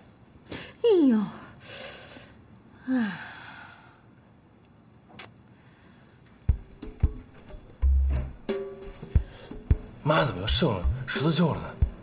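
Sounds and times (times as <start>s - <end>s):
woman sighing: 1.2s - 4.0s.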